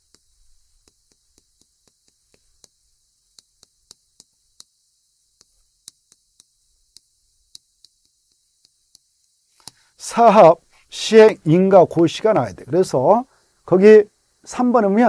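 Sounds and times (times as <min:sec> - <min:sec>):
chalk tapping on chalkboard: 0:00.0 - 0:09.8.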